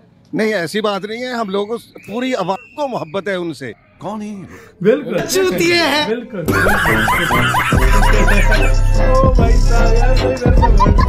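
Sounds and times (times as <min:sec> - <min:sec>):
man laughing: 0:06.4 - 0:08.9, 0:10.5 - 0:11.0
music with deep bass beat: 0:07.4 - 0:11.0.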